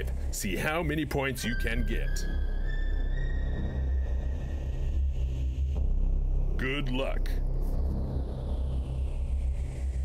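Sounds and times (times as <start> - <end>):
low rumbling drone: 1.5 - 10.0.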